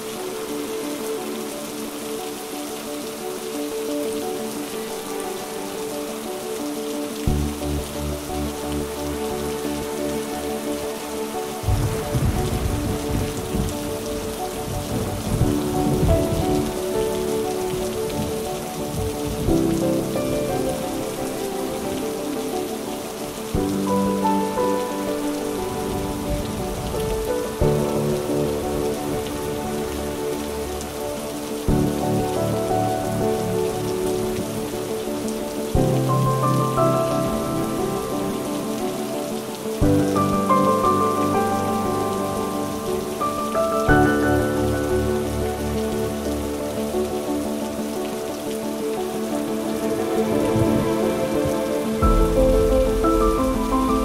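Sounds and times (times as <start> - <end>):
rain on paving stones: 0.0 - 54.0
slow piano music: 0.0 - 54.0.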